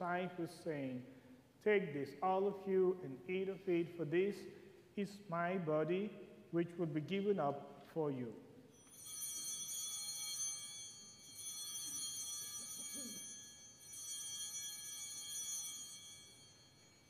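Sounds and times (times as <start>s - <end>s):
altar bells ringing: 8.7s - 17.0s.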